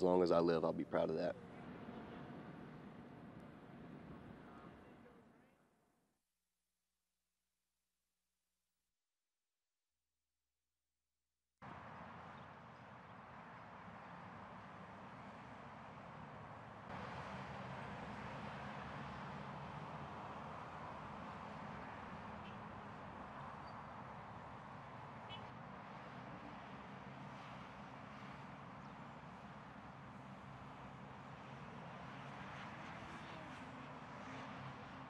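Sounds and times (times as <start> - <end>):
street traffic noise: 0.0 - 5.6, 11.6 - 35.0.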